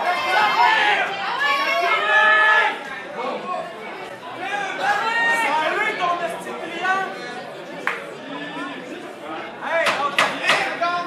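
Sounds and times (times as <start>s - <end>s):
people talking and shouting: 0.0s - 11.0s.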